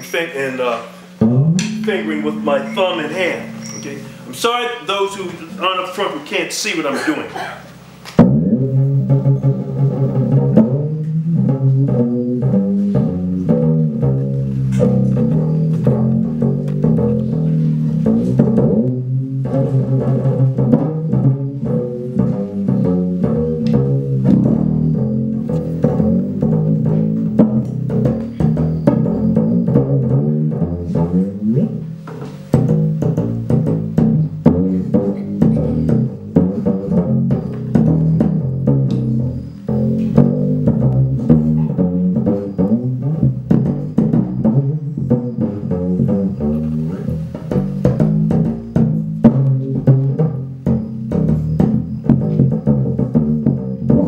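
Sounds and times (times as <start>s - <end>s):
single string beaten with drumsticks: 1.1s - 4.1s.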